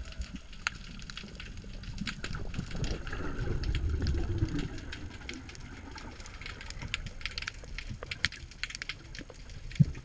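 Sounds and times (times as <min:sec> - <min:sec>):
low underwater rumble: 0:00.0 - 0:10.0
underwater crackle of clicks: 0:00.0 - 0:10.0.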